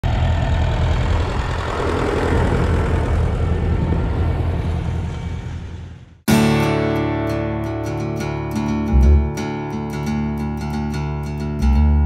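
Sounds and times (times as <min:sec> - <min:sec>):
engine running low rumble: 0:00.0 - 0:06.2, 0:08.9 - 0:09.4.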